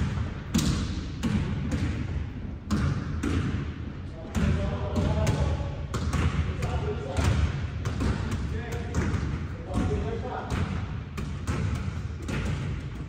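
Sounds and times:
basketballs bouncing on hardwood floor: 0.0s - 13.0s.

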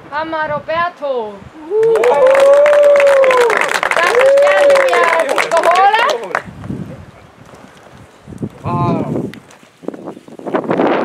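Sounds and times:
person cheering: 1.6s - 6.4s
people clapping: 1.7s - 6.5s.

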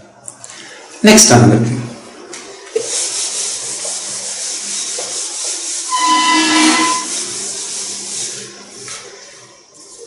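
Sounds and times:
duster wiping whiteboard: 2.6s - 10.0s
whiteboard squeak: 5.9s - 7.2s.

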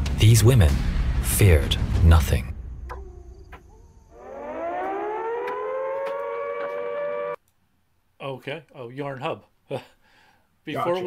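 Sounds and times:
air-raid siren wailing: 2.9s - 7.4s.

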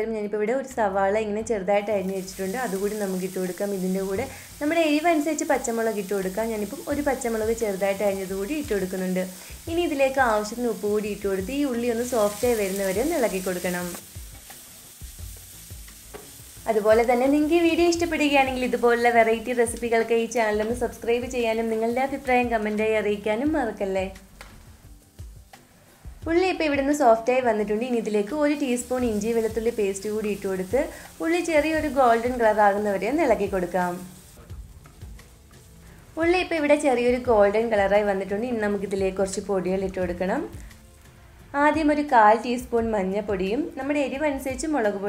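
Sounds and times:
onion sizzling in oil: 1.8s - 45.0s
spatula tapping and scraping pan: 16.0s - 16.4s.

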